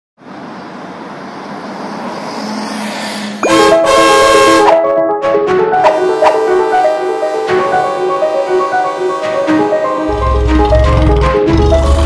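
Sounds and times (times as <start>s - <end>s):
road traffic noise: 0.2s - 12.0s
bright music with plucked notes: 3.4s - 12.0s.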